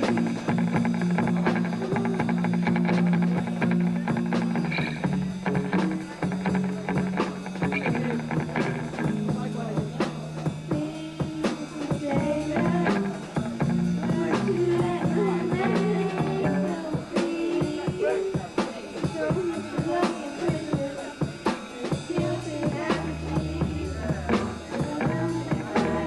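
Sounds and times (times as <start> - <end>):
upright double bass: 0.0 - 11.0, 12.0 - 16.9, 22.1 - 26.0
drum kit steady beat: 0.0 - 26.0.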